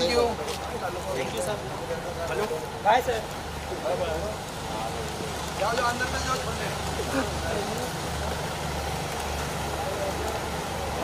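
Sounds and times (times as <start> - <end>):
faint voices: 0.0 - 11.0
vehicle engine idling: 0.0 - 11.0.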